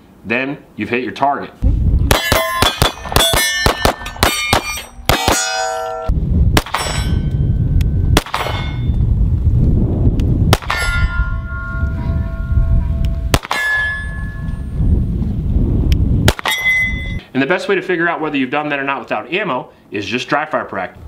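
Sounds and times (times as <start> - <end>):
low rumble: 1.6 - 3.2, 6.1 - 17.2
pistol shots: 2.1 - 5.9, 6.6 - 7.2, 8.2 - 8.9, 10.5 - 11.1, 13.3 - 14.1, 16.3 - 16.8
metallic clang of steel targets: 2.1 - 7.5, 8.2 - 8.9, 10.6 - 11.9, 13.3 - 14.6, 16.3 - 17.2.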